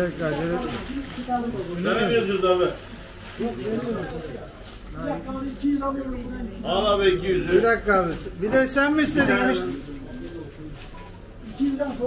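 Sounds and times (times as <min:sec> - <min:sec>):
man speaking: 0:00.0 - 0:10.8.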